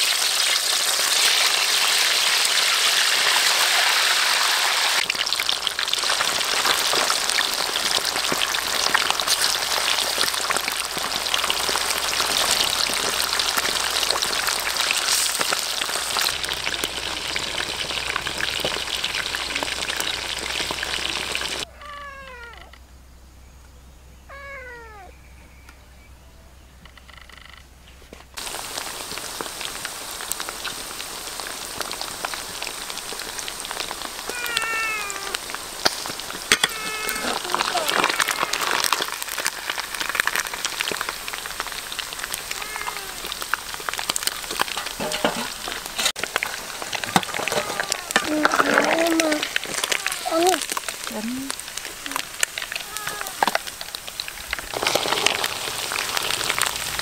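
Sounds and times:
fish sizzling in hot oil: 0:00.0 - 0:21.7, 0:28.4 - 0:57.0
porcupine crying: 0:21.6 - 0:22.8, 0:24.3 - 0:25.1, 0:34.3 - 0:35.4, 0:36.6 - 0:38.9, 0:42.4 - 0:43.3, 0:47.3 - 0:50.6, 0:52.8 - 0:53.5.

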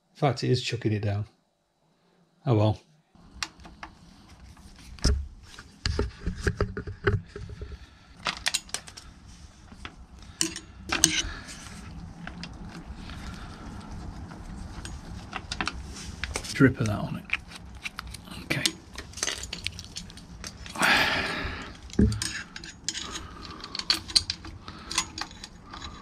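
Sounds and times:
metallic clinks and knocks: 0:09.8 - 0:11.4, 0:18.5 - 0:26.0
heavy rain hiss: 0:20.7 - 0:22.1.

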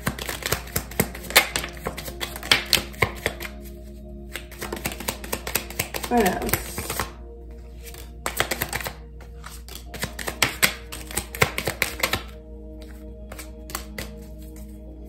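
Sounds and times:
cards being shuffled: 0:00.0 - 0:14.8.

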